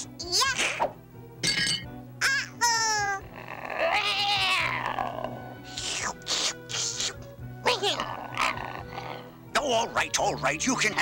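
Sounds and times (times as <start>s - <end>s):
cartoon cat meowing: 2.2s - 4.9s.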